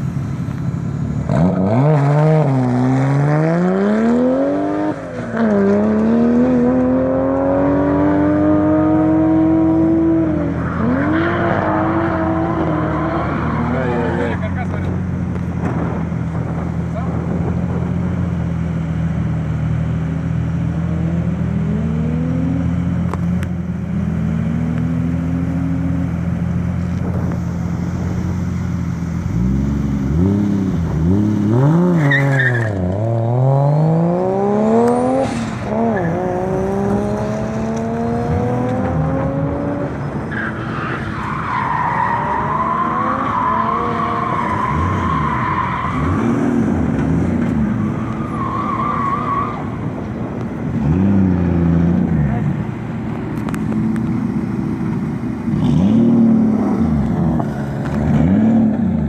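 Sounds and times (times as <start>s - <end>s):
car engine idling: 0.0s - 1.3s
car engine revving: 0.0s - 59.0s.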